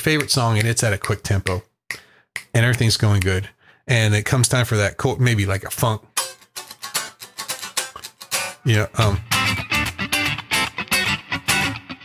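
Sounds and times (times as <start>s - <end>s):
choppy electric guitar strumming: 6.1s - 12.0s.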